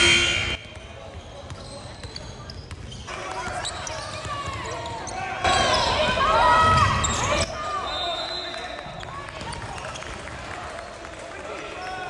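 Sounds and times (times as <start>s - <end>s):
loud steady tone: 0.0s - 0.7s
sneakers squeaking: 0.0s - 10.0s.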